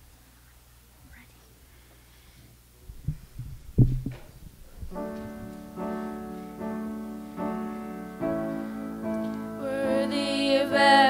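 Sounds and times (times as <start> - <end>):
low room hum: 0.0 - 11.0
faint whispering: 0.4 - 2.3
microphone handling thumps: 2.8 - 5.7.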